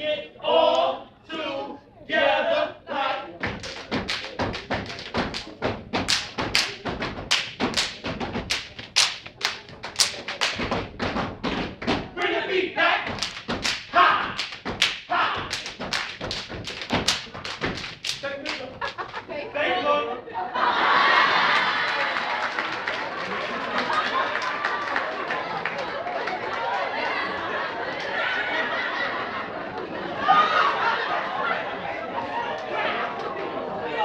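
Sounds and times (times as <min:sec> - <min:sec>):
feet stomping: 0:03.4 - 0:12.2, 0:12.9 - 0:19.3
hands clapping and slapping body: 0:03.4 - 0:12.3, 0:13.1 - 0:19.3.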